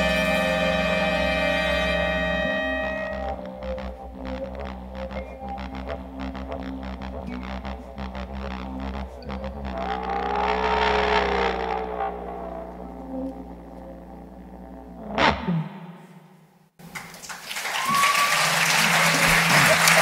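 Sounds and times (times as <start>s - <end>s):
tone bending in pitch: 0.0s - 16.6s
soft low drone: 0.0s - 16.8s.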